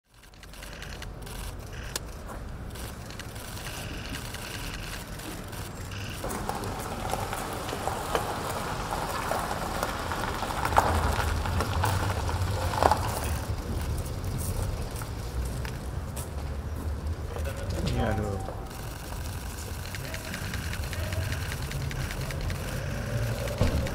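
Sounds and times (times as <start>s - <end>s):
tyres crunching on gravel: 0.6s - 23.9s
car engine running low: 18.6s - 23.9s
sharp clicks and knocks: 19.1s - 23.9s.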